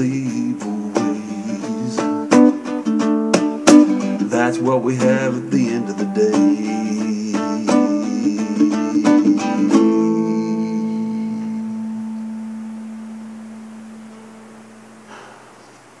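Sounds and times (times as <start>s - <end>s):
acoustic guitar strumming: 0.0s - 15.9s.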